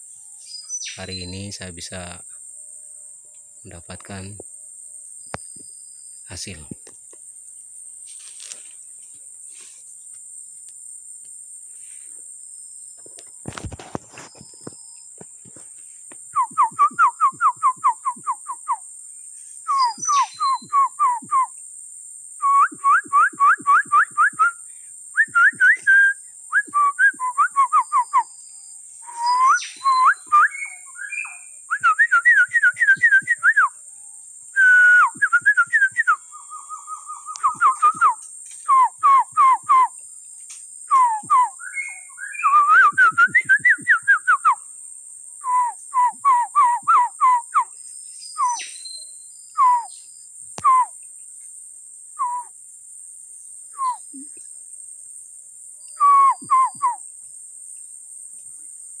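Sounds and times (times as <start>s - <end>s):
steady high-pitched hiss: 0.0s - 59.0s
sharp whistled bird calls: 0.4s - 1.9s, 16.3s - 18.8s, 19.6s - 21.6s, 22.4s - 24.6s, 25.2s - 33.7s, 34.6s - 39.9s, 40.9s - 44.6s, 45.4s - 51.0s, 52.2s - 52.5s, 53.7s - 54.3s, 55.8s - 57.0s.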